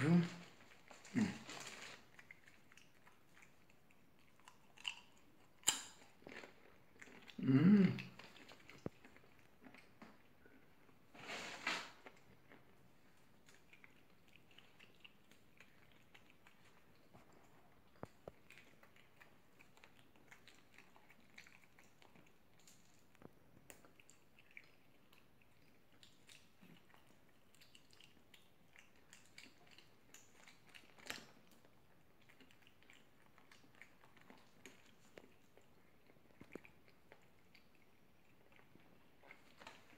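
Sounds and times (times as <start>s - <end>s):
biscuit being chewed: 0.0s - 39.9s.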